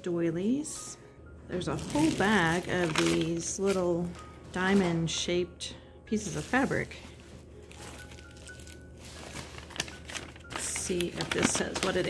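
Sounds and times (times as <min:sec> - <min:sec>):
fabric scraps rustling: 0:06.2 - 0:12.0.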